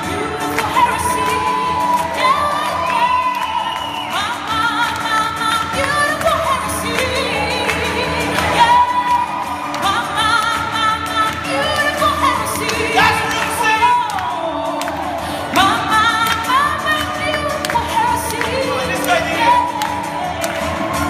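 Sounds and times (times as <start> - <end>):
group singing pop song: 0.0 - 21.0.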